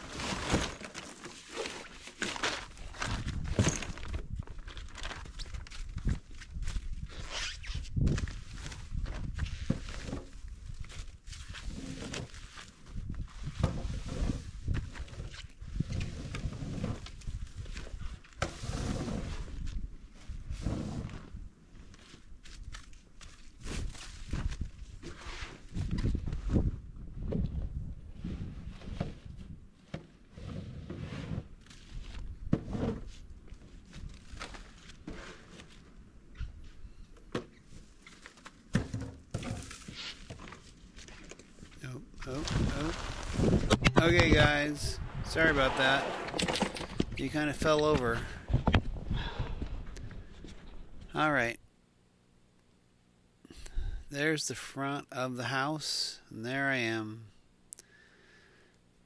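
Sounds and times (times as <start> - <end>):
footsteps in snow: 39.7 - 43.7
snow shovels scraping concrete: 42.4 - 46.8.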